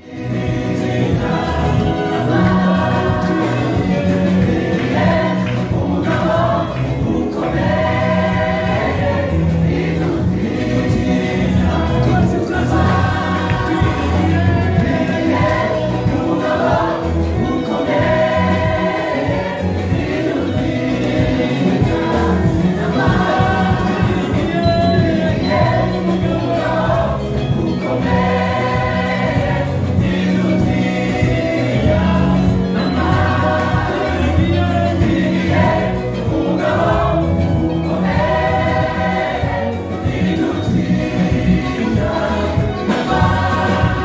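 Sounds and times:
gospel group singing: 0.0 - 44.0
live band playing: 0.0 - 44.0.

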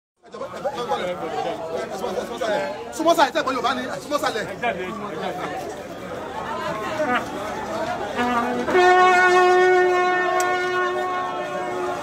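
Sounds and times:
people talking over one another: 0.2 - 12.0.

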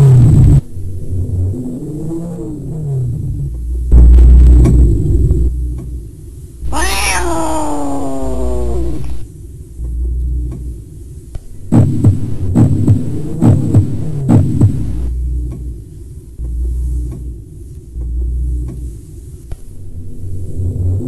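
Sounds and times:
low throbbing hum: 0.1 - 6.7, 8.4 - 21.0
cat-like yowl falling in pitch: 6.7 - 9.2.

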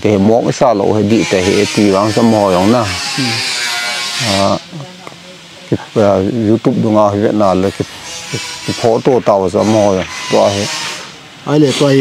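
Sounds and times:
man speaking: 0.0 - 3.5, 4.2 - 4.9, 5.7 - 10.8, 11.4 - 12.0
steady hiss: 0.0 - 12.0.

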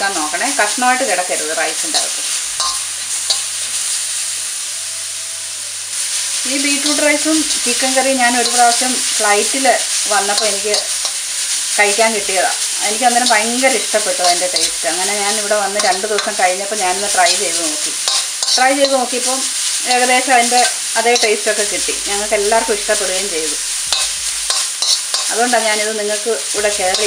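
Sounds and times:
metal spoon scraping pan: 0.0 - 4.7, 5.9 - 27.0
food sizzling in pan: 0.0 - 27.0.

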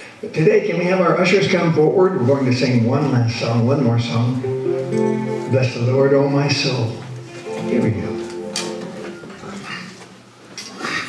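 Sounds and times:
held guitar notes: 4.4 - 10.0.

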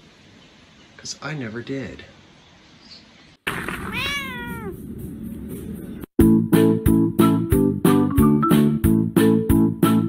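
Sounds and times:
cat meowing: 3.7 - 4.8.

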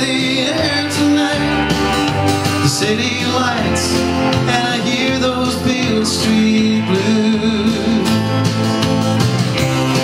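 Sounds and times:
bass line: 0.0 - 10.0
drums: 0.0 - 10.0
electric guitar: 0.0 - 10.0.

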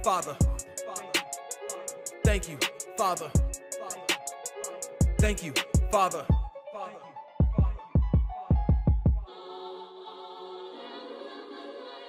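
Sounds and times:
choir-like voices holding a chord: 0.0 - 5.0, 9.2 - 12.0.

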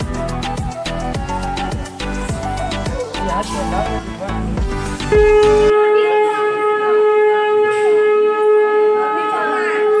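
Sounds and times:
conch shell blown: 5.0 - 10.0.

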